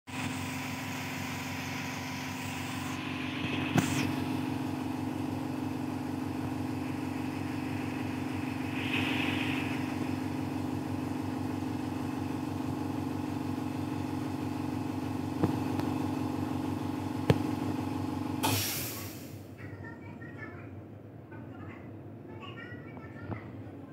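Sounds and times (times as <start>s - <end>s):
machine hum with low drone: 0.1s - 18.4s.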